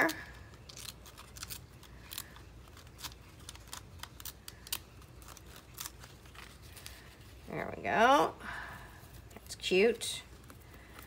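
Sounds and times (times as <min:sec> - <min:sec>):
scissors snipping paper: 0:00.0 - 0:06.6.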